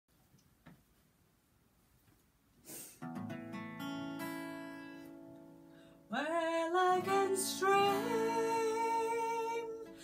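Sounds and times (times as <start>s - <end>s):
acoustic guitar chords: 3.0s - 10.0s.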